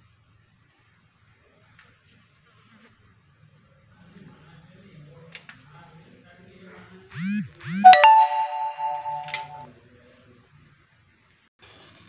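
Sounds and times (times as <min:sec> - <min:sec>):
bell ringing: 0:07.8 - 0:09.6.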